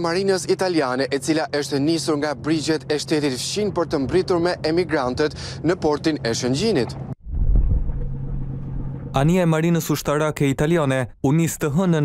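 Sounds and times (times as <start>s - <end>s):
low rumble with hum: 0.0s - 12.0s.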